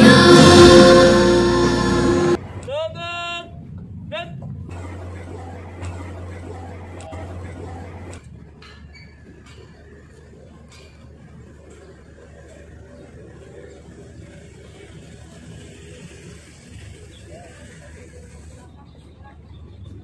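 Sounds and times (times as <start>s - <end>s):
ensemble music: 0.0s - 2.5s.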